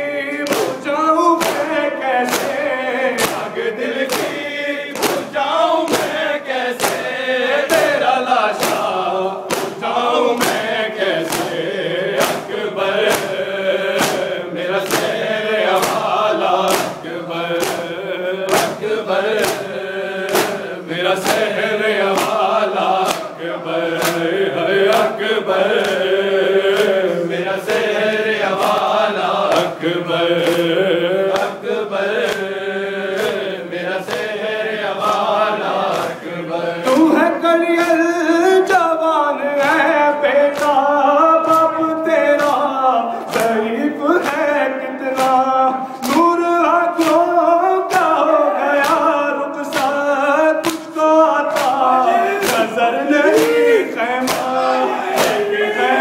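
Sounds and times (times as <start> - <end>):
men chanting lament in unison: 0.0 - 56.0
hands slapping chests: 0.4 - 37.2, 40.5 - 56.0.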